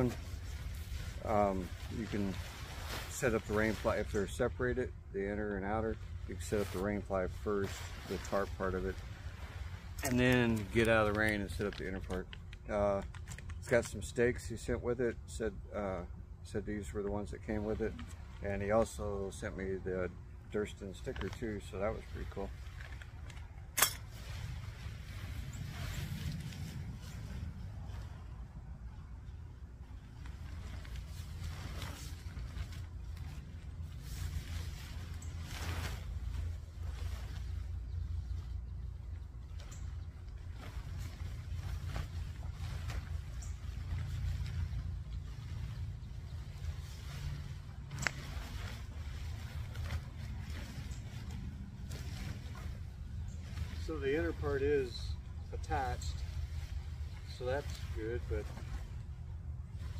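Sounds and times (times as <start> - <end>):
tent fabric rustling: 0.0 - 4.7, 5.9 - 12.1, 20.6 - 59.9
steady low rumble: 0.0 - 59.9.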